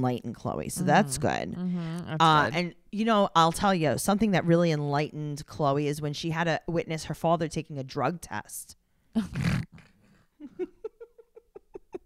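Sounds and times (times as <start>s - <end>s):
woman laughing: 10.4s - 12.0s.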